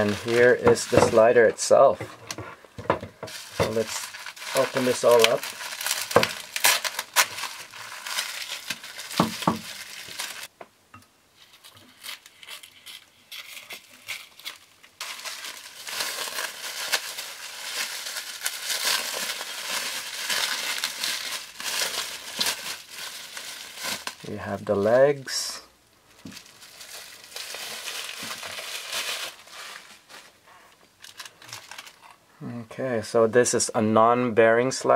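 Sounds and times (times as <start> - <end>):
plastic wrap crinkling: 0.0 - 10.5, 11.4 - 25.0, 26.1 - 32.2.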